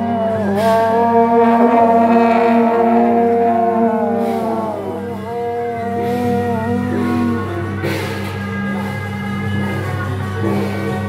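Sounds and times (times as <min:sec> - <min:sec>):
long horns blowing held notes: 0:00.0 - 0:11.0.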